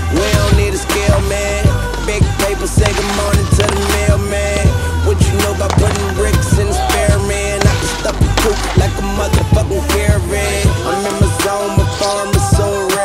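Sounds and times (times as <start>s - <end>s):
hip-hop music with steady beat: 0.0s - 13.0s
snowboard sliding on wooden table: 1.9s - 4.8s.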